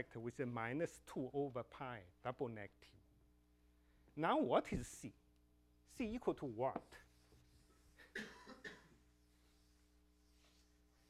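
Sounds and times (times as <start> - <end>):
man coughing: 8.0 - 9.0.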